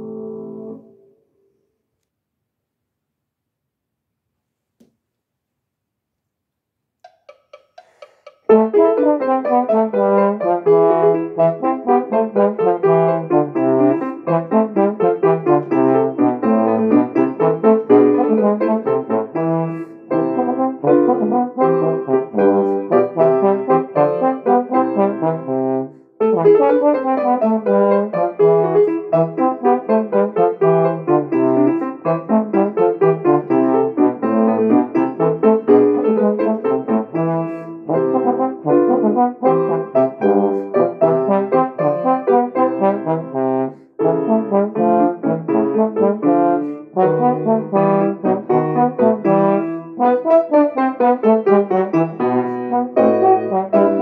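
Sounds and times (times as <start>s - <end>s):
piano accompaniment: 0.0s - 1.2s, 7.1s - 54.0s
trombone playing: 8.5s - 54.0s.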